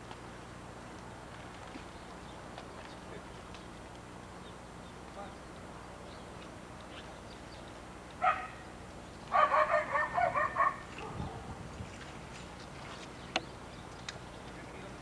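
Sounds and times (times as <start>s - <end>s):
dog barking: 8.2s - 8.6s, 9.3s - 11.5s.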